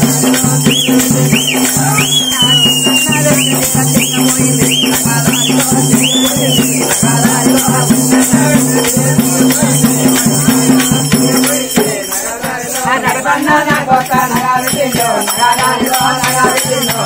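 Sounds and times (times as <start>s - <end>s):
high melody: 0.0s - 12.2s
jingling rattle percussion: 0.0s - 17.0s.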